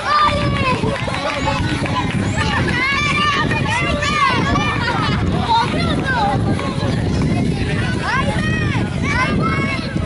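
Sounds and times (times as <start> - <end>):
people chattering and calling: 0.0 - 10.0.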